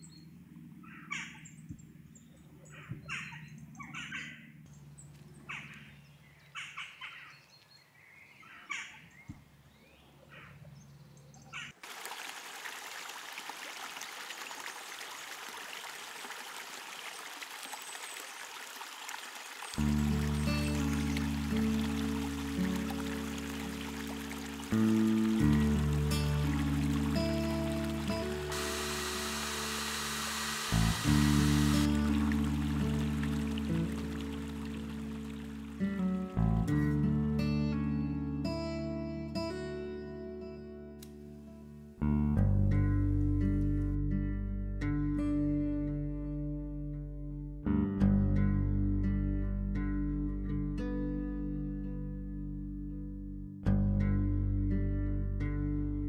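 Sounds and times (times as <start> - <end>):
songbirds chirping: 0.0 - 11.8, 14.1 - 28.6, 31.6 - 36.6
stream water rushing: 11.8 - 36.5
background music: 19.8 - 44.0.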